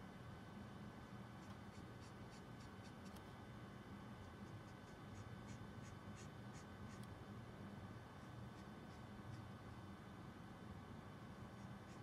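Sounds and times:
marker strokes on card: 0:01.4 - 0:03.2, 0:04.2 - 0:07.1, 0:08.2 - 0:09.5, 0:11.5 - 0:12.0.

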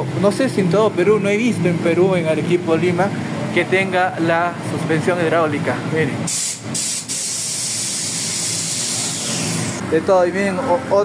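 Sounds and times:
air hissing from suspension: 0:06.3 - 0:09.8.

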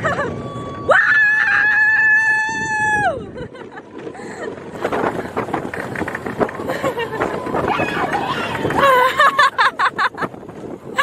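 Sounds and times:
roller coaster ride noise: 0:00.0 - 0:11.0
rider screaming: 0:00.4 - 0:03.2, 0:07.5 - 0:09.1.

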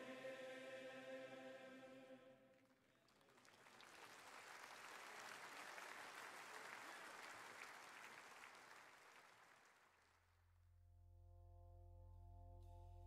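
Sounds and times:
faint crowd applause: 0:02.5 - 0:10.4.

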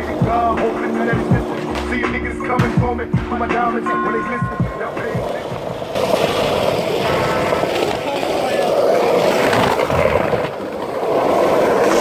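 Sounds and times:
skateboard wheels rolling on pavement: 0:00.0 - 0:12.0.

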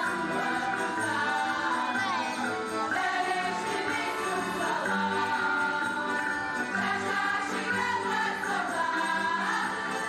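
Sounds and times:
accompanying music: 0:00.0 - 0:10.0
women's chorus singing: 0:00.0 - 0:10.0.

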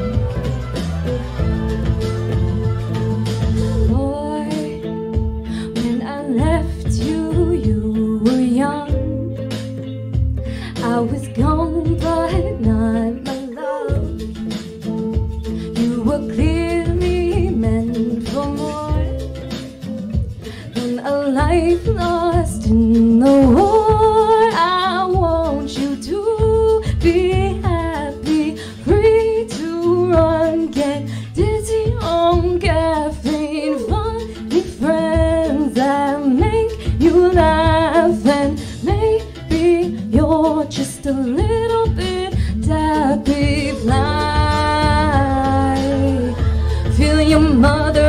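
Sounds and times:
electric guitar chords: 0:00.0 - 0:48.0
woman singing with vibrato: 0:03.3 - 0:09.5, 0:10.7 - 0:14.6, 0:15.5 - 0:19.9, 0:20.6 - 0:48.0.

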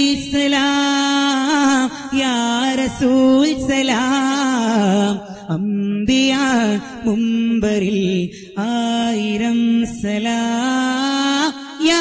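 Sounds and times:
person singing devotional song: 0:00.0 - 0:12.0.

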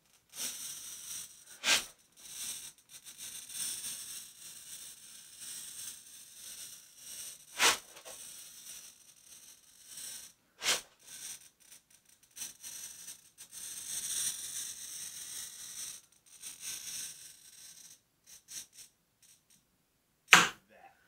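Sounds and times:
glass cutter scoring glass: 0:01.5 - 0:02.0, 0:07.4 - 0:08.2, 0:10.6 - 0:11.0, 0:20.3 - 0:20.6
sharp click: 0:20.3 - 0:20.6.

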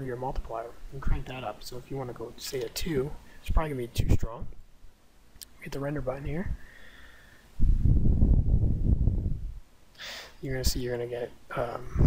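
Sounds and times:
wind rumble on microphone: 0:03.5 - 0:04.6, 0:07.6 - 0:09.6, 0:11.8 - 0:12.0.

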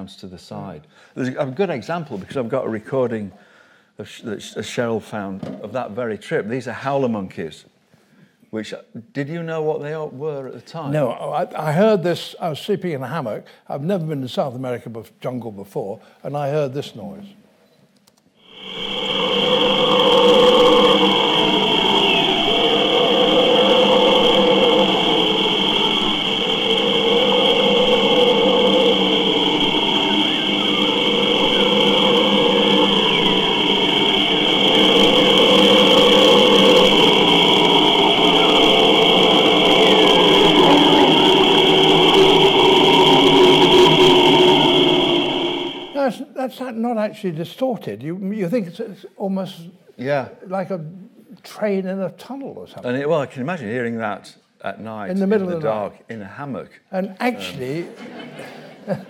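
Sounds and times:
steady high-pitched whine: 0:18.5 - 0:46.4
howler monkeys howling over loudspeakers: 0:18.6 - 0:46.0.

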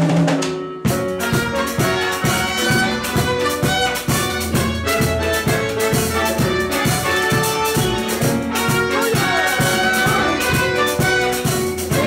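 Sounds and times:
live band playing: 0:00.0 - 0:12.0
steady percussion beat: 0:00.0 - 0:12.0.

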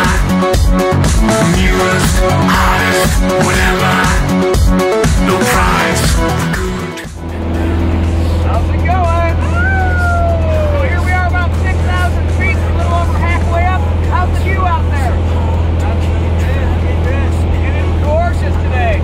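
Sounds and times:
music track: 0:00.0 - 0:19.0
people talking: 0:08.4 - 0:19.0.

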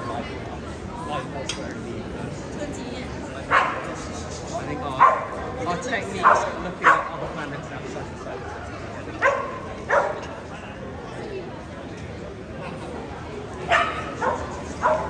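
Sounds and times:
crowd chatter: 0:00.0 - 0:15.0
dog barking: 0:03.5 - 0:03.9, 0:05.0 - 0:05.4, 0:06.2 - 0:07.1, 0:09.2 - 0:10.3, 0:13.7 - 0:15.0.

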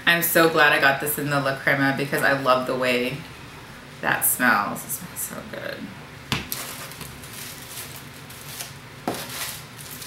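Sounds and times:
paper packing rustling: 0:06.5 - 0:10.0.

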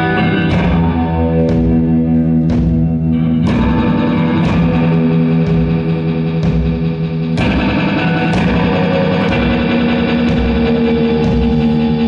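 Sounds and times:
amplified guitar playing: 0:00.0 - 0:12.0.

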